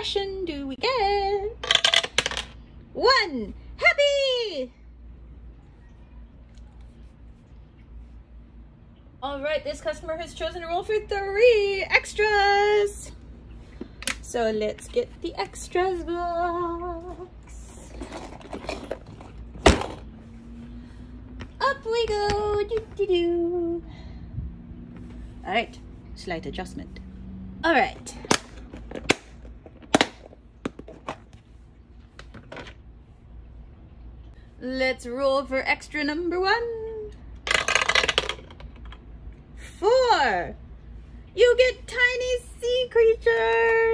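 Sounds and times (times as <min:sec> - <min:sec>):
die clattering in a dice tray: 0:01.6 - 0:02.6, 0:37.5 - 0:39.0.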